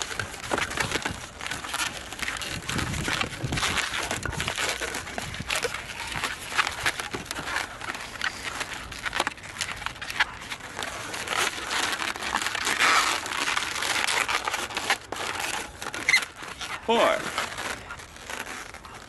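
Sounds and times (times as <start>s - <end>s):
balloons rubbing and squeaking: 0.0s - 19.0s.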